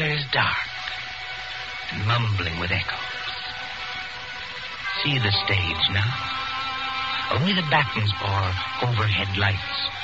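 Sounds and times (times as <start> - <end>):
radio hiss: 0.0 - 10.0.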